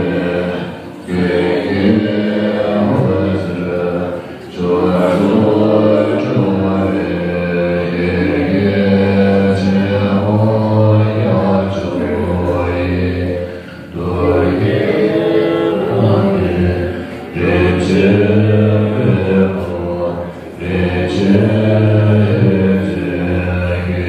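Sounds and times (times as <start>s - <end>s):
monks chanting in low voices: 0.0s - 24.0s.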